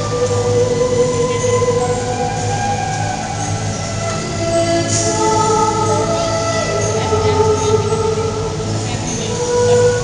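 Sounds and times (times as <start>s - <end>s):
violin: 0.0s - 10.0s
woman singing: 0.0s - 10.0s.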